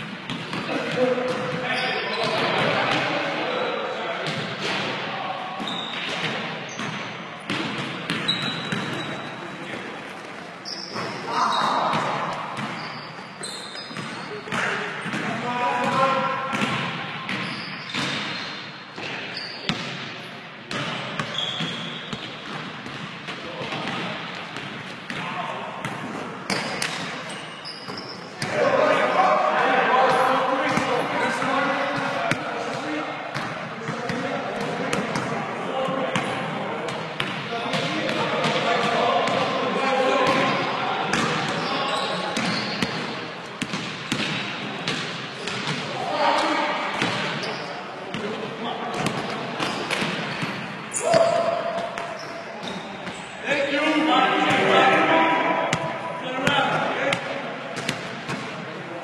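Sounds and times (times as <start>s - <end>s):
players talking and calling: 0.0s - 59.0s.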